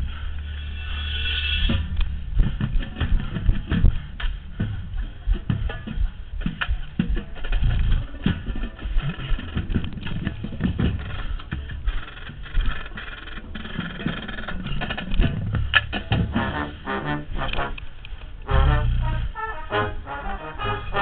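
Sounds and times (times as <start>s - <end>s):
drum corps brass and drums: 1.3s - 21.0s
wind rumble on microphone: 1.6s - 19.4s.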